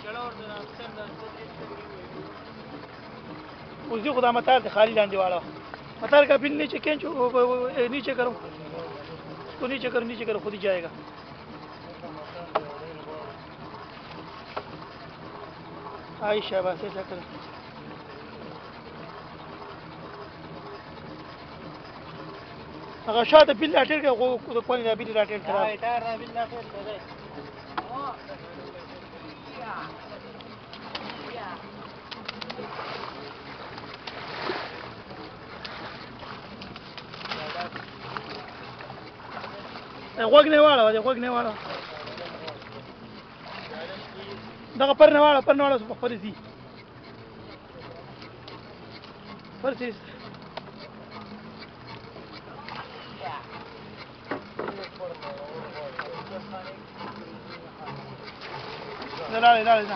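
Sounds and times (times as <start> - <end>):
distant voices calling out: 0.0 - 59.9
water sloshing against boat hull: 0.0 - 59.9.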